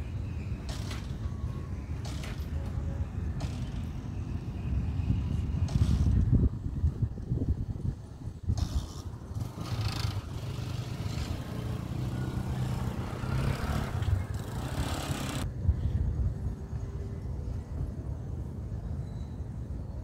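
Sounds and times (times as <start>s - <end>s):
motor vehicle passing: 8.6s - 15.5s.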